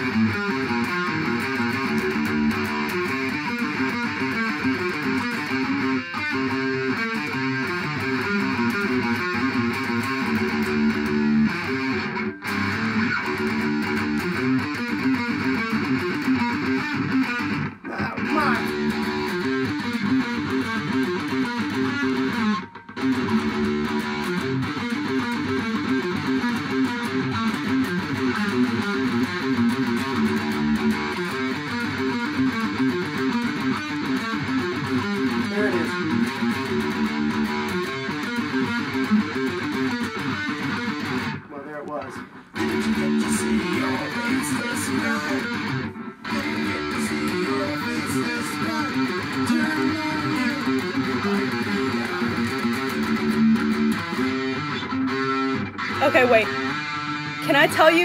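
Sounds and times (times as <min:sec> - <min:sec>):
electric guitar riffing: 0:00.0 - 0:58.0.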